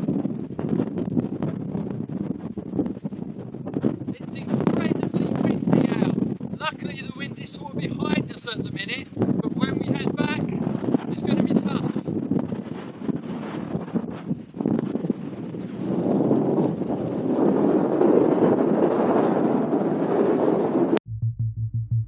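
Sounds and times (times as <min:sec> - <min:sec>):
strong wind buffeting microphone: 0:00.0 - 0:21.0
electronic music with pulsing bass: 0:21.1 - 0:22.0.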